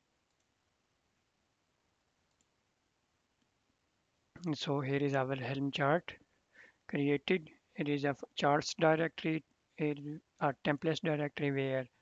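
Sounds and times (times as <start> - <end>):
faint click: 0.3 - 0.5, 2.3 - 2.6.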